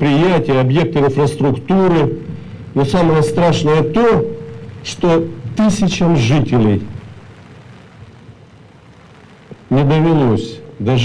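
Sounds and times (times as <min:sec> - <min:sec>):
low rumble: 0:00.0 - 0:08.4
soft hiss: 0:00.0 - 0:11.0.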